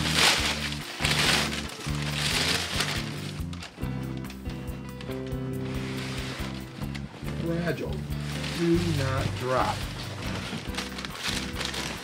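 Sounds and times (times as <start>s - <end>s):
background music: 0.0s - 12.0s
packing paper crinkling: 0.0s - 12.0s.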